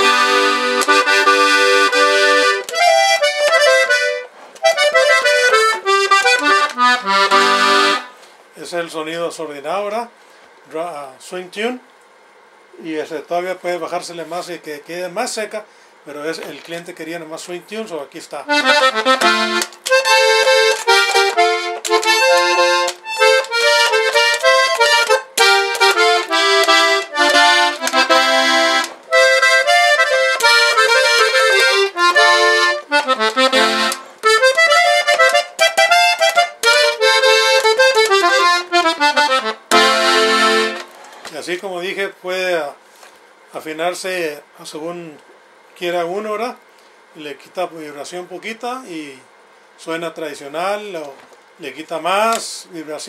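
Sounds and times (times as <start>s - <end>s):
button accordion playing quick tune: 0.0s - 8.2s, 18.5s - 41.0s.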